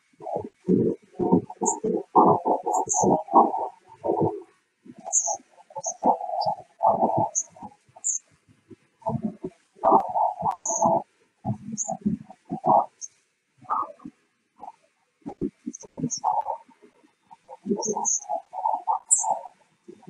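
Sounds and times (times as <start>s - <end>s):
garbled choppy video audio: 0.0s - 20.0s.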